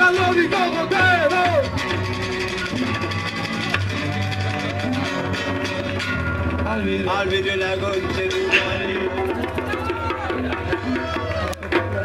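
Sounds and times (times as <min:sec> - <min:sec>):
live band with acoustic guitars: 0:00.0 - 0:12.0.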